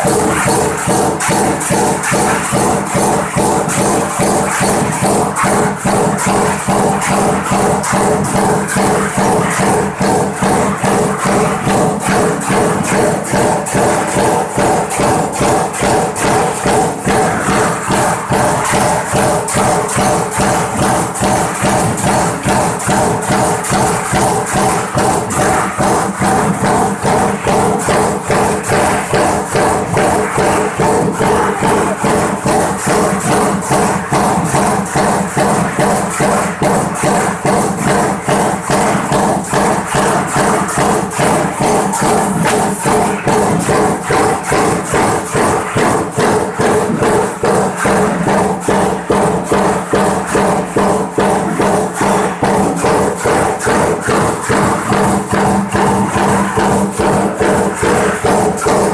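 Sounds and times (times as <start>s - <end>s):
power press metallic clatter: 0.0s - 58.9s
steady machine hum: 0.0s - 58.9s.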